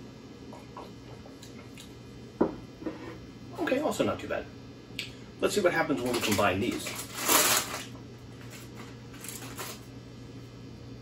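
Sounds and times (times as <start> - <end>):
plastic package crinkling: 5.9 - 9.9.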